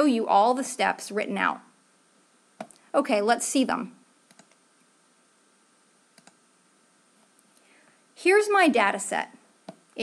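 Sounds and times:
faint clicks: 6.2 - 6.4.

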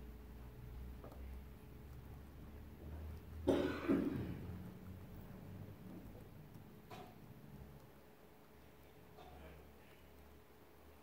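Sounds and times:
person coughing: 3.4 - 4.4.

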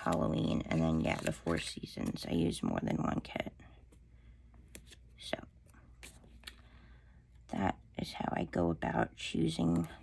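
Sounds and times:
sticker paper rustling: 0.0 - 2.2.

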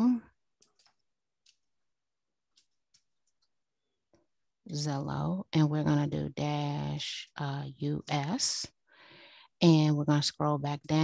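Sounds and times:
computer keys clicking: 0.6 - 1.7, 2.5 - 3.6.

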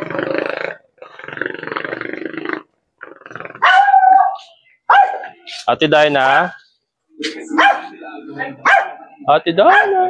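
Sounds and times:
dog growling: 0.0 - 4.5
dog barking sharply: 3.6 - 5.3, 7.6 - 7.8, 8.6 - 9.0, 9.7 - 10.0.

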